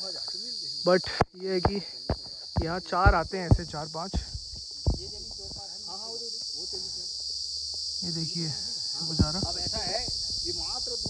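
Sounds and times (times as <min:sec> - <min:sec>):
insect chorus buzzing: 0:00.0 - 0:11.0.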